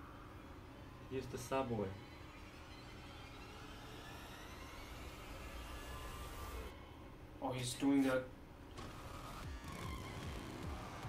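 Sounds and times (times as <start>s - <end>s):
rising whine: 0.0s - 7.4s, 8.7s - 11.0s.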